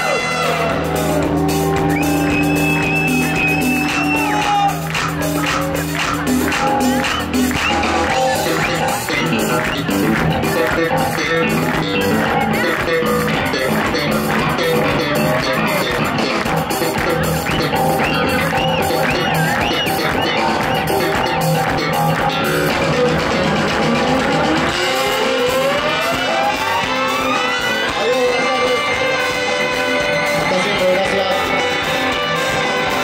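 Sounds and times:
congas: 0.0 - 33.0
electric bass guitar: 0.0 - 33.0
ska-rock band playing: 0.0 - 33.0.

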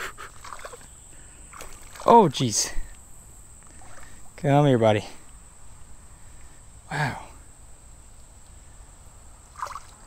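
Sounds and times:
creek water trickling: 0.0 - 10.0.

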